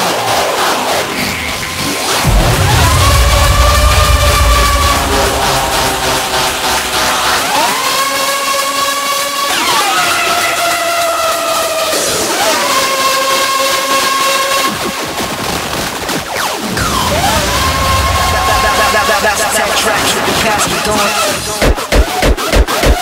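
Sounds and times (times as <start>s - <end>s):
synth lead swooping in pitch: 2.0s - 9.0s
kick drum and bass: 2.2s - 7.8s.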